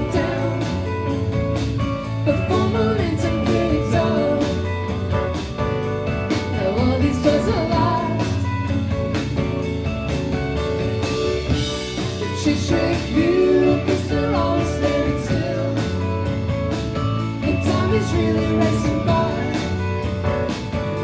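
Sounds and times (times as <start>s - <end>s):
live rock band playing: 0.0s - 21.0s.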